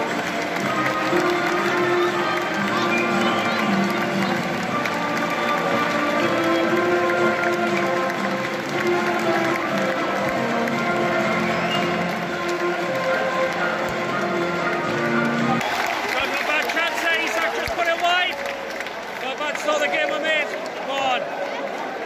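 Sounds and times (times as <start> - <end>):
music over public address: 0.0 - 18.3
crowd noise: 0.0 - 22.0.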